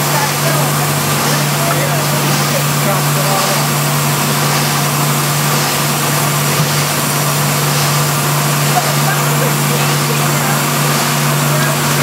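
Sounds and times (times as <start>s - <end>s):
molding machinery din: 0.0s - 12.0s.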